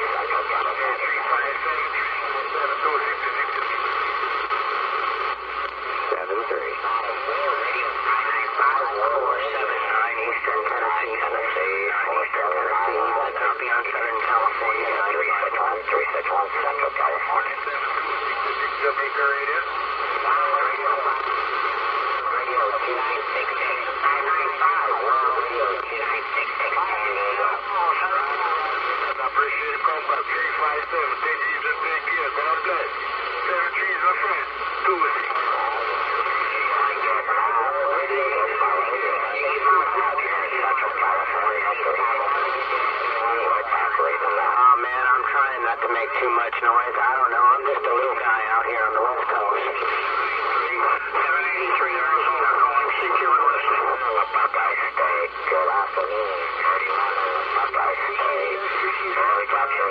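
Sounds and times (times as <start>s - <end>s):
radio band noise: 0.0s - 59.9s
voices talking over radio: 0.0s - 59.9s.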